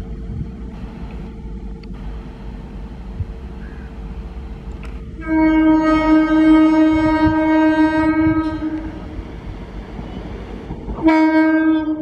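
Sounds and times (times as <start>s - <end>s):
train rumbling on track: 0.0s - 12.0s
train horn blast: 2.0s - 12.0s.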